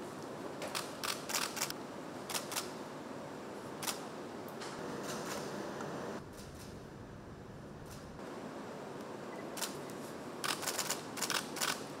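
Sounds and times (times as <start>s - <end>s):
room hiss: 0.0s - 12.0s
camera shutters clicking: 0.7s - 2.7s, 9.6s - 9.8s, 10.4s - 11.9s.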